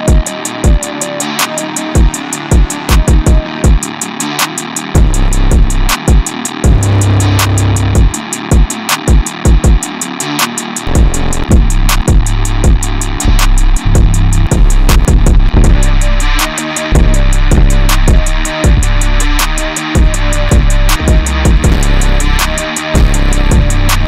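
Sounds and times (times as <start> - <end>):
hi-hats ticking: 0.0 - 24.0
trap beat: 0.0 - 24.0
deep bass notes: 5.0 - 6.0, 6.7 - 8.2, 10.8 - 24.0
metallic melodic sample: 10.9 - 11.8.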